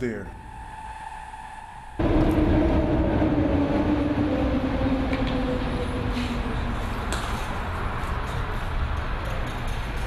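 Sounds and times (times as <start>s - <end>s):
train whine: 0.0s - 9.0s
elevated train rumbling: 0.0s - 10.0s.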